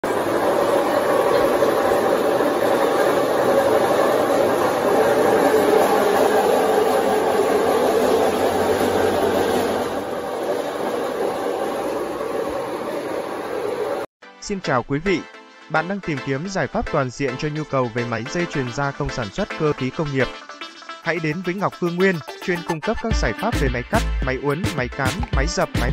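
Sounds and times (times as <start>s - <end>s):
tube straightening machine rumbling: 0.0s - 14.1s.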